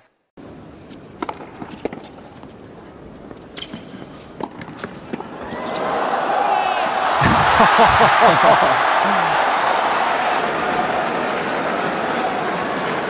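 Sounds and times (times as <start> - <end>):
crowd noise: 4.6 - 13.0.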